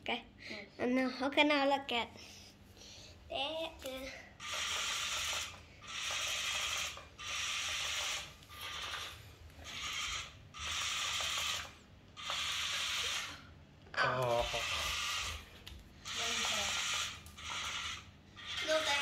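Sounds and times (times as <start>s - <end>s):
electric motor gear whir: 4.4s - 13.4s, 14.2s - 15.5s, 16.1s - 19.0s.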